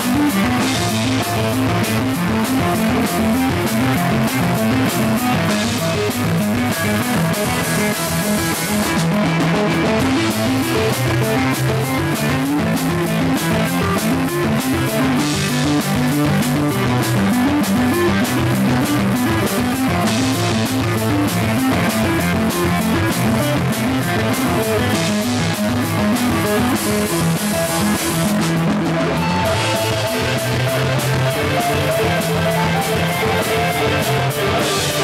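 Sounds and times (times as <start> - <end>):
drum kit with cymbal strikes: 0.0 - 35.0
electric guitar riff: 0.0 - 35.0.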